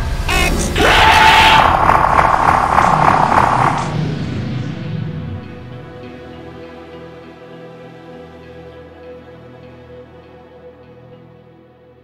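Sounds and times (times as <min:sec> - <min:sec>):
music: 0:00.0 - 0:00.9, 0:03.9 - 0:12.0
high tone over pulsing buzz: 0:00.8 - 0:06.4.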